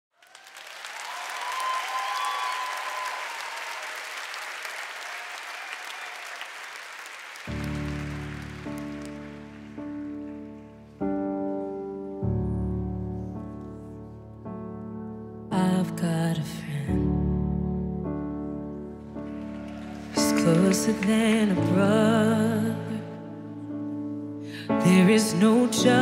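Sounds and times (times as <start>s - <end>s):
crowd applauding and cheering: 0.1s - 11.2s, 18.7s - 23.0s
keyboard playing piano chords: 7.4s - 26.0s.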